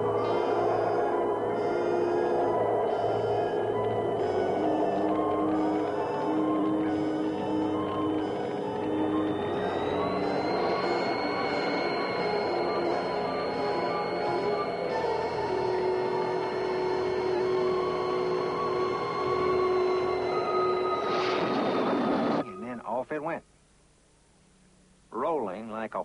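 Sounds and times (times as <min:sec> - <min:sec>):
suspenseful background music: 0:00.0 - 0:23.0
high electronic whine: 0:00.0 - 0:23.2.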